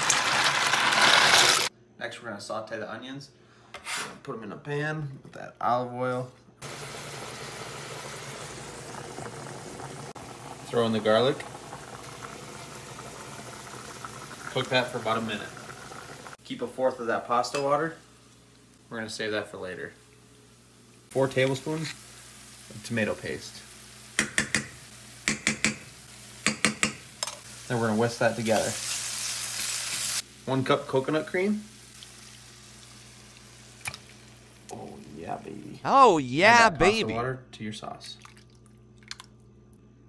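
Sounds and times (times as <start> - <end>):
onions sizzling in oil: 6.6 - 16.4, 17.2 - 35.2
pot of water boiling: 6.6 - 35.8.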